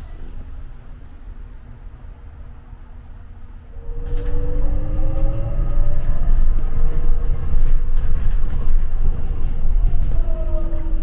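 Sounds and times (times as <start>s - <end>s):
bus engine rumble: 0.0s - 11.0s.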